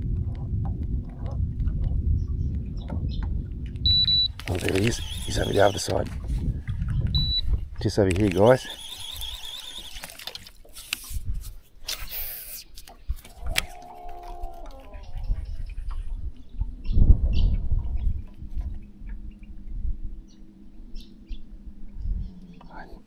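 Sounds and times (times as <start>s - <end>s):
wind rumbling on microphone: 0.0s - 10.0s, 11.0s - 12.1s, 12.9s - 23.0s
fishing reel and line whirr: 4.3s - 6.0s, 8.0s - 11.2s, 11.8s - 12.7s
steady low hum: 15.2s - 23.0s.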